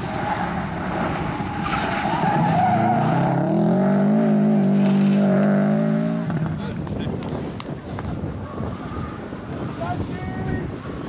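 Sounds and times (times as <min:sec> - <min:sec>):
distant rally car engine: 0:00.0 - 0:06.9
wind rumbling on microphone: 0:00.0 - 0:11.0.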